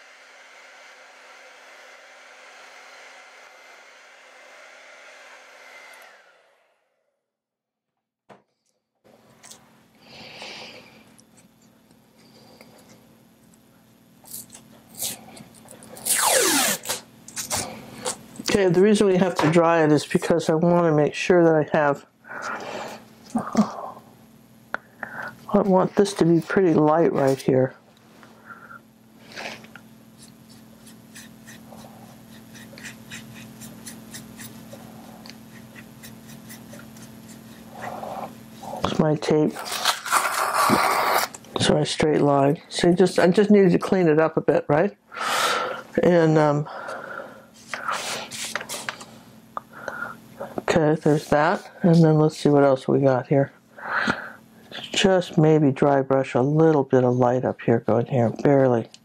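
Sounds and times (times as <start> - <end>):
hair dryer blowing: 0.0 - 7.0, 16.1 - 17.1
faint steady hum: 9.1 - 59.0
paintbrush scratching on paper: 30.2 - 38.8.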